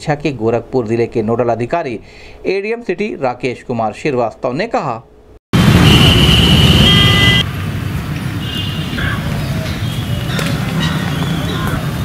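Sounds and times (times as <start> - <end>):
loud outdoor background noise: 5.1 - 12.0.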